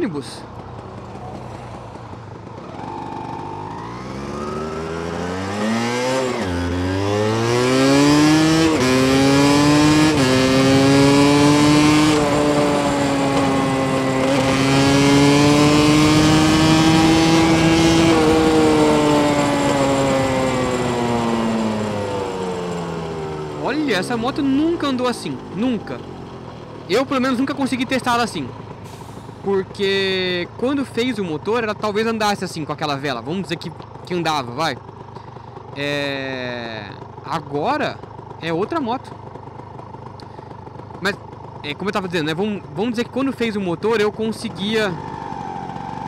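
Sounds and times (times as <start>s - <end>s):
motorcycle engine accelerating: 0.0s - 46.0s.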